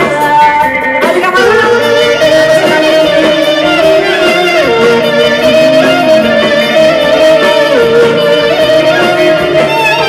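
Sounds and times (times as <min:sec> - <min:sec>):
folk band accompaniment: 0:00.0 - 0:10.0
clarinet playing ornamented melody: 0:01.4 - 0:10.0.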